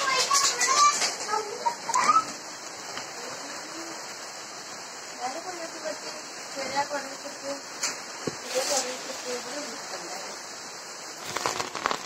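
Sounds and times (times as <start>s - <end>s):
voices: 0.0s - 4.3s, 5.1s - 10.5s
heavy rain on foliage: 0.0s - 12.0s.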